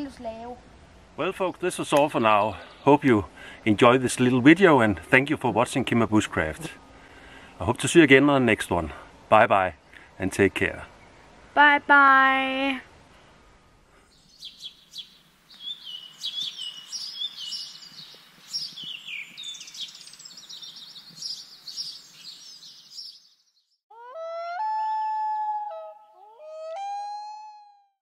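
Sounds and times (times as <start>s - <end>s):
songbirds chirping and singing: 2.0s - 3.1s, 14.1s - 23.8s.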